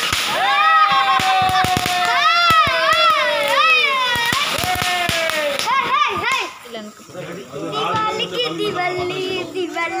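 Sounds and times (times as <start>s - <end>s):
firework whistle: 0.0s - 5.7s
fireworks crackling and popping: 0.0s - 10.0s.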